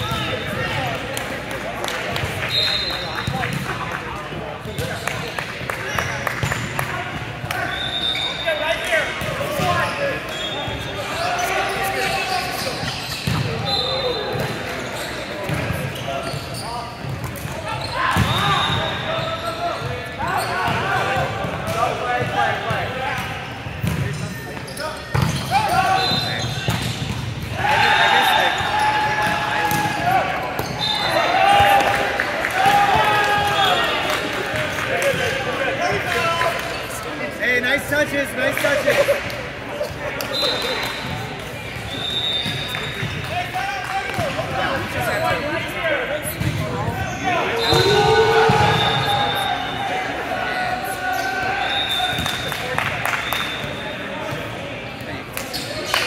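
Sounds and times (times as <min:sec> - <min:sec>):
players calling out: 0:01.8 - 0:54.6
sneakers squeaking on court: 0:09.2 - 0:21.5, 0:23.4 - 0:27.5, 0:30.5 - 0:31.7, 0:39.8 - 0:43.4, 0:46.2 - 0:49.4, 0:55.4 - 0:55.9.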